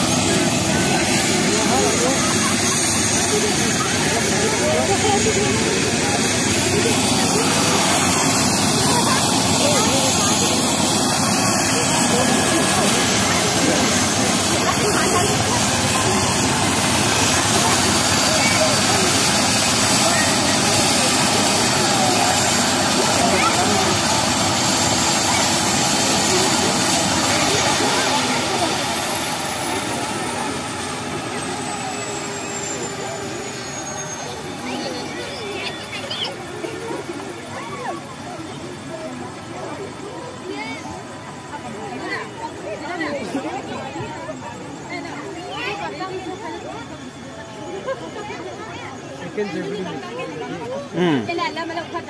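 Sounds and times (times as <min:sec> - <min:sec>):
crowd chatter: 0:00.0 - 0:52.0
helicopter engine and rotor: 0:00.0 - 0:52.0
high turbine whine: 0:00.0 - 0:52.0.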